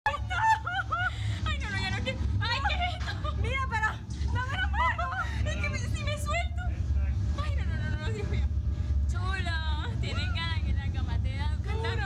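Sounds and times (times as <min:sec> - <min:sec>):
young women talking: 0:00.1 - 0:06.7, 0:09.1 - 0:12.0
steady low rumble: 0:00.1 - 0:12.0.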